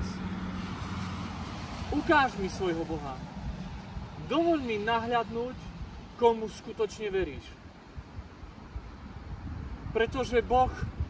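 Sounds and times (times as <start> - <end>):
distant car passing: 0.0 - 6.3.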